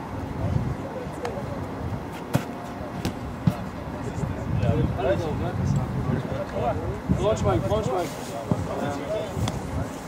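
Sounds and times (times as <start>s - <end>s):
footballs being kicked: 2.1s - 3.7s.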